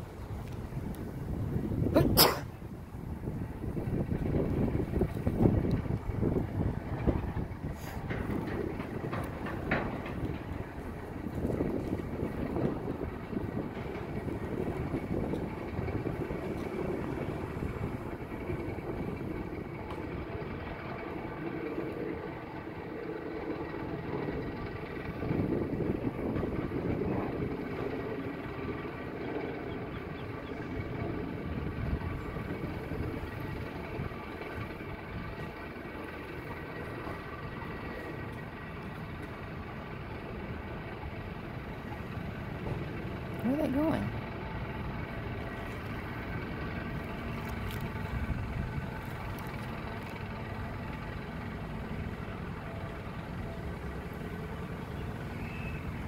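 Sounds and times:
low mechanical drone: 0.0 - 56.0.

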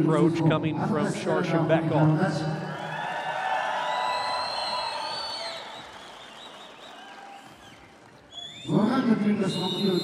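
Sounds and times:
crowd cheering and applause: 2.7 - 9.4
high whistles: 3.9 - 10.0.

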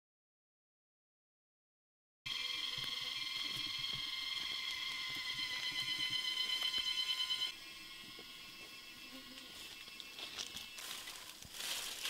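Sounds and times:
crickets chirping: 2.3 - 12.0.

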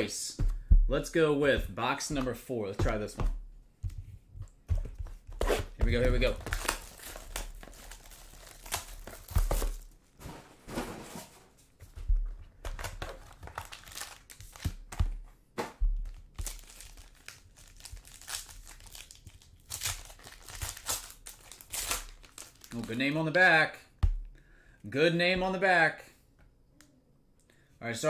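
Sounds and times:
plastic wrapper crinkling and tearing: 6.0 - 10.0, 12.7 - 14.9, 16.0 - 23.1.

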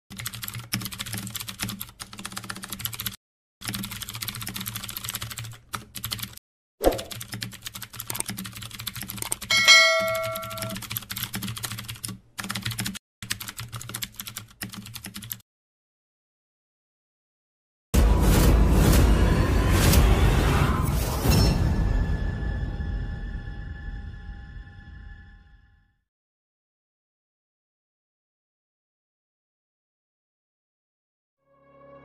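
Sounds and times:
computer keyboard typing: 0.1 - 15.4
bright bell ding: 9.5 - 10.8.

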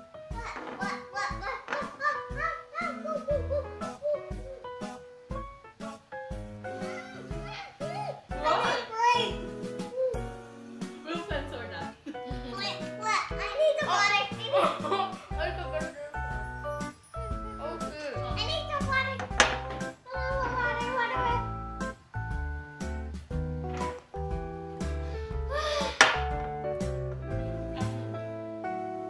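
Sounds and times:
background music: 0.0 - 29.0
girls talking and exclaiming: 6.8 - 9.5, 12.3 - 16.0, 17.5 - 21.6
girl laughing: 14.4 - 15.3.

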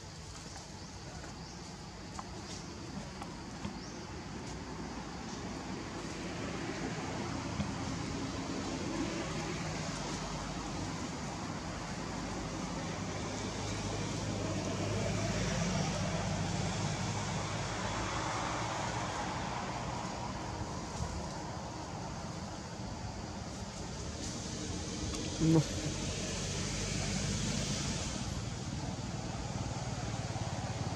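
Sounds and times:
distant traffic: 0.0 - 30.9
motor vehicle rumble: 0.0 - 30.9.

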